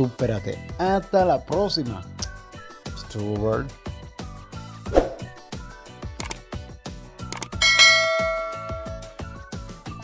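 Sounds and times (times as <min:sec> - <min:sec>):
background music with steady beat: 0:00.0 - 0:10.0
notification bell chime: 0:07.6 - 0:09.2.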